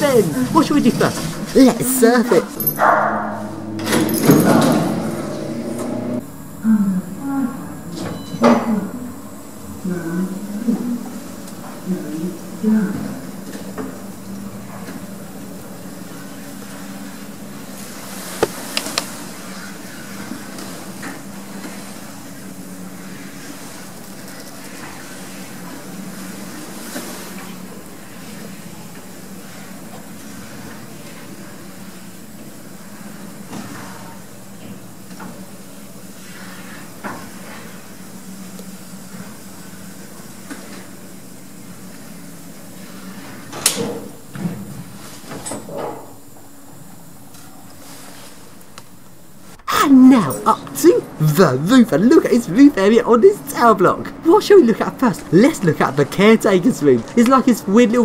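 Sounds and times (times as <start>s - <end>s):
lift car humming: 0.0s - 23.9s.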